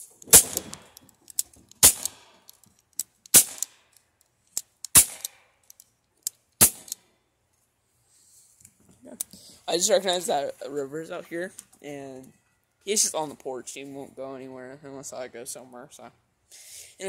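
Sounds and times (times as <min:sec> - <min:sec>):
bb pistol shots: 0:00.3 - 0:01.0, 0:01.8 - 0:02.4, 0:03.3 - 0:03.8, 0:04.9 - 0:05.4, 0:06.6 - 0:07.0.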